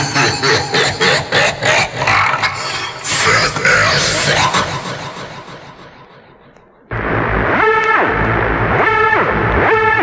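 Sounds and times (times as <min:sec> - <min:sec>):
steady low bass: 0:04.4 - 0:10.0.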